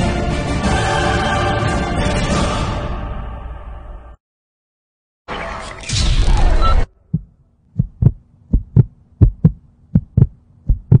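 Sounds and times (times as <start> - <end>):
heartbeat thumps: 7.0 - 11.0.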